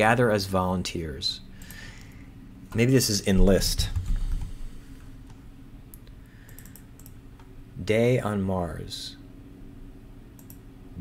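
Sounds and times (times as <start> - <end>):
faint room hum: 0.0 - 11.0
computer keyboard keystrokes: 6.5 - 7.5.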